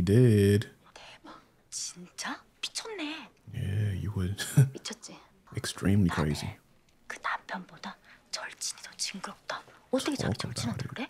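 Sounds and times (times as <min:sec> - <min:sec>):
person whispering: 0:06.1 - 0:11.0.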